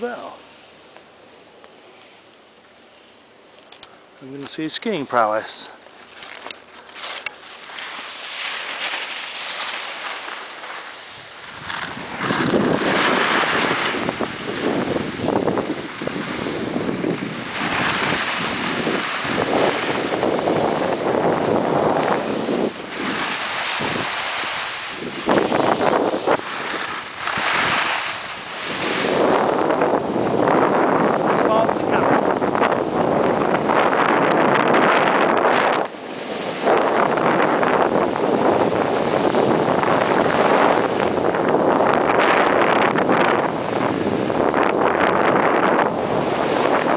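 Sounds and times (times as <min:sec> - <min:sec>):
wind buffeting microphone: 0:06.2 - 0:46.9
skis scraping on snow: 0:06.8 - 0:46.9.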